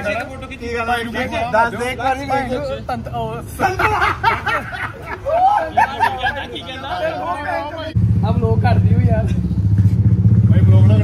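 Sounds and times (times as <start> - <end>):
vehicle engine running loudly: 8.0 - 11.0.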